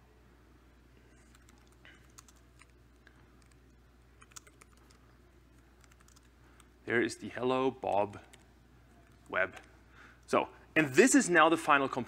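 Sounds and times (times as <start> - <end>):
faint keyboard typing: 1.1 - 6.8, 7.8 - 10.3.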